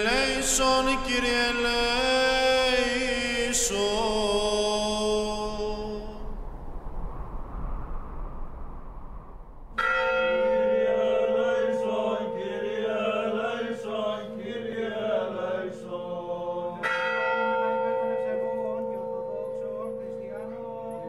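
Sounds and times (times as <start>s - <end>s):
large church bell ringing: 9.8s - 21.0s
faint chanting voices: 10.6s - 21.0s.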